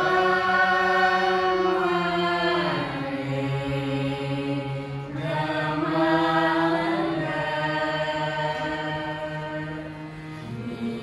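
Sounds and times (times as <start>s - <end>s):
group singing in unison: 0.0s - 11.0s
harmonium: 0.0s - 11.0s.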